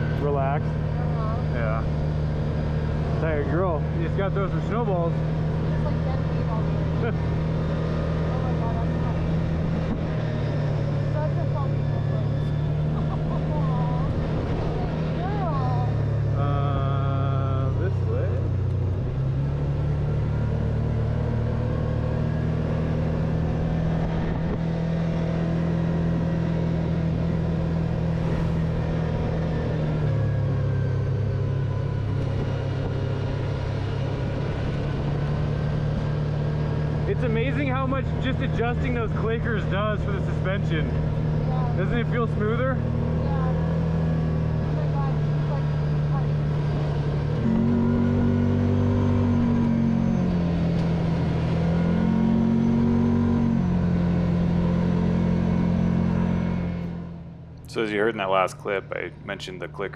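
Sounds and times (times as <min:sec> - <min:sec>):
off-road vehicle engine running: 0:00.0 - 0:59.9.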